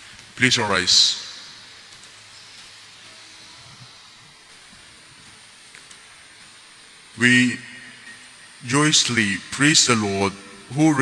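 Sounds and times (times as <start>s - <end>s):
faint room tone hiss: 0.0s - 11.0s.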